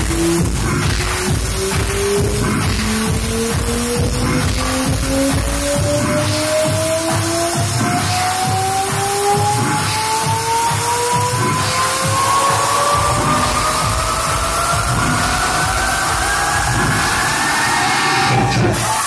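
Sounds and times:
kick drum: 0:00.0 - 0:17.4
deep bass: 0:00.0 - 0:18.9
rising synth tones: 0:01.2 - 0:19.0.

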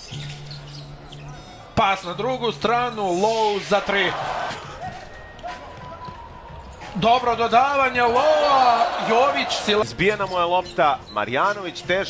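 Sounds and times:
crowd noise: 0:02.7 - 0:10.2.

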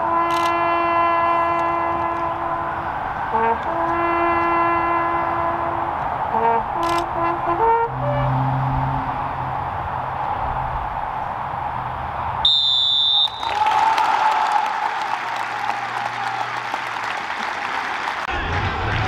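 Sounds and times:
referee's whistle blast: 0:12.4 - 0:13.8
crowd applauding: 0:12.6 - 0:19.0.

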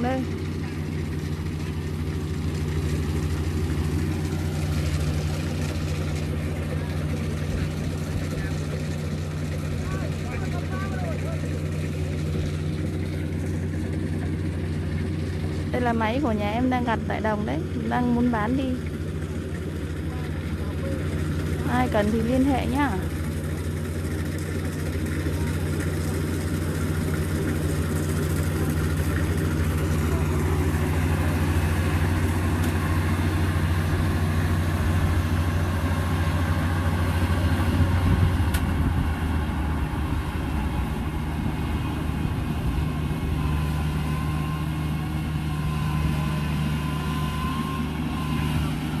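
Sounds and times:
combine harvester engine drone: 0:00.0 - 0:49.0.

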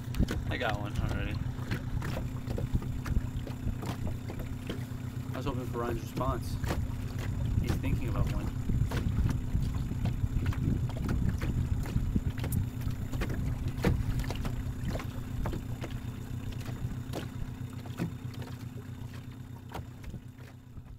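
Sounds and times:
outboard motor running: 0:00.0 - 0:20.9.

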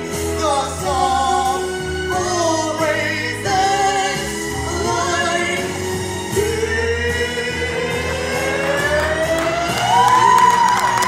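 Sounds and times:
man and woman singing a duet: 0:00.0 - 0:10.1
musical accompaniment: 0:00.0 - 0:11.0.

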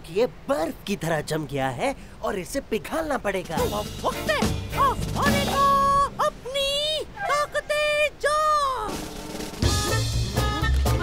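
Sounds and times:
high-pitched puppet voice: 0:03.6 - 0:09.0.

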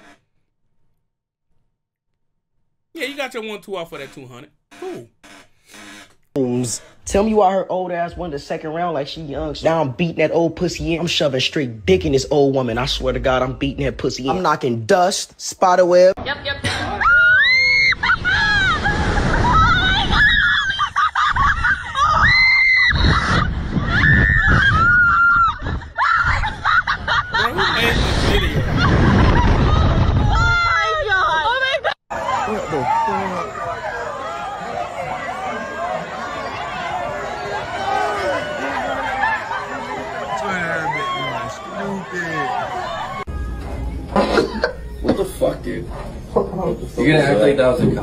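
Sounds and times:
person's voice bursts: 0:03.0 - 0:05.1
woman screaming: 0:17.0 - 0:21.3
woman laughing: 0:20.6 - 0:22.3, 0:26.0 - 0:28.0, 0:44.1 - 0:45.0.

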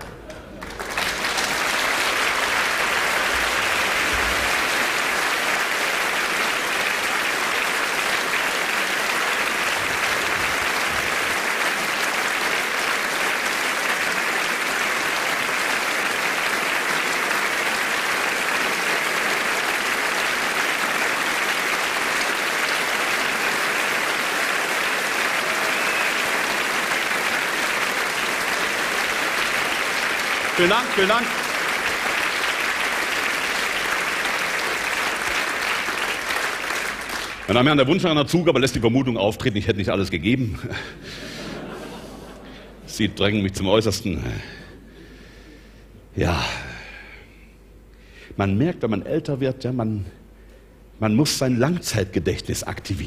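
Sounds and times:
audience applauding: 0:00.0 - 0:38.2.

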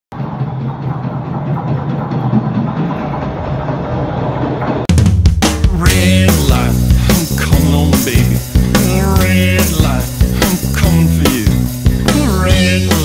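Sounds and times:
rock drum kit: 0:00.1 - 0:13.0
subway train arriving: 0:00.2 - 0:04.9.

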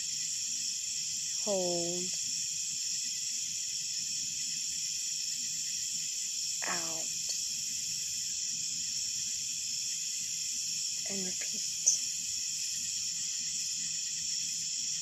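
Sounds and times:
night insects shrilling: 0:00.0 - 0:15.0
woman speaking: 0:01.5 - 0:02.2, 0:06.6 - 0:07.3, 0:11.1 - 0:12.0.

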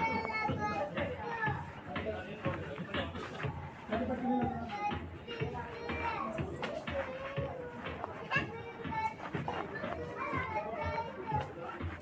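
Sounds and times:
high-pitched voices chattering: 0:00.0 - 0:12.0
music: 0:00.0 - 0:12.0.

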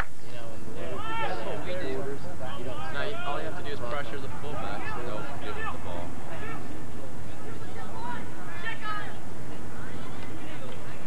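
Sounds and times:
distant voices calling: 0:00.6 - 0:11.0.

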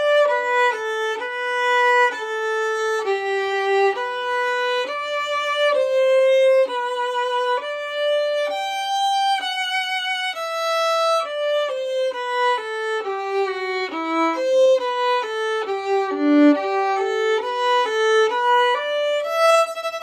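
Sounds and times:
solo violin slow bowed notes: 0:00.0 - 0:20.0.

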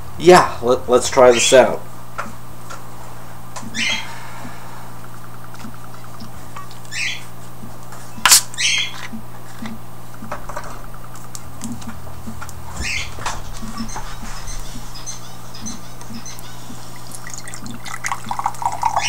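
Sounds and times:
sharp snap of cap: 0:08.2 - 0:08.6
carbonation hissing: 0:15.8 - 0:19.0.

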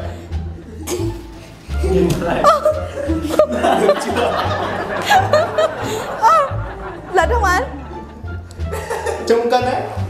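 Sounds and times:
background music: 0:00.0 - 0:10.0
people laughing: 0:00.8 - 0:09.6.

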